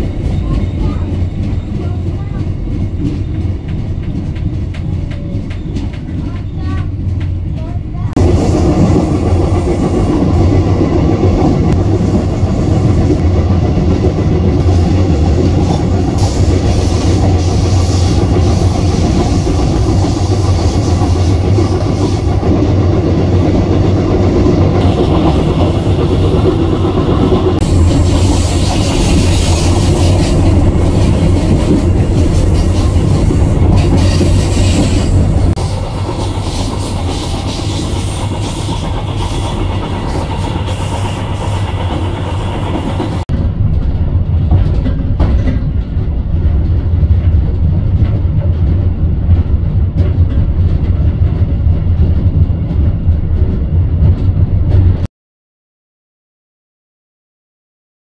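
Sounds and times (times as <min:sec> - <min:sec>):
diesel train rumbling: 0:00.0 - 0:55.1.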